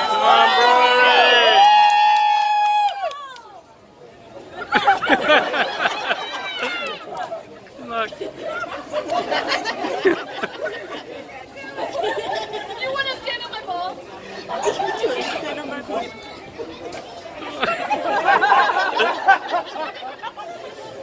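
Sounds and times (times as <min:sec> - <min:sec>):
people talking: 0:03.3 - 0:21.0.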